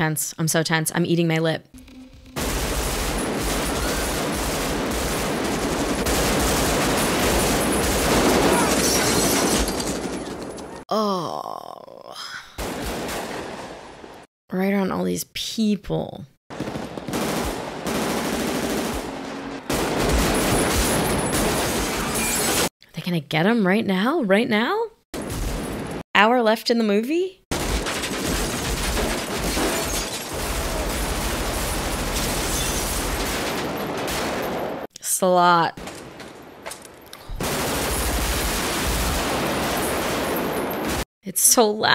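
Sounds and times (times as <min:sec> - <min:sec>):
automatic rifle fire: 0:02.4 - 0:08.8, 0:16.5 - 0:22.0, 0:27.5 - 0:32.5.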